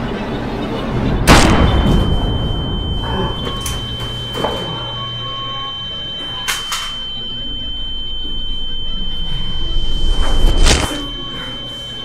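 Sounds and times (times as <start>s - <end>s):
high-pitched ringing tone: 0.0s - 12.0s
low drone: 7.0s - 12.0s.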